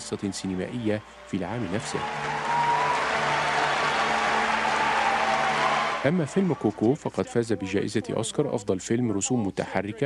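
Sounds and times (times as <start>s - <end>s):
music playing: 0.0s - 6.8s
audience applauding: 0.0s - 7.0s.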